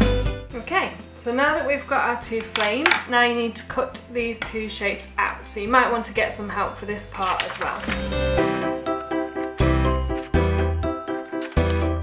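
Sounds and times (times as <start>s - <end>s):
woman speaking: 0.6s - 8.0s.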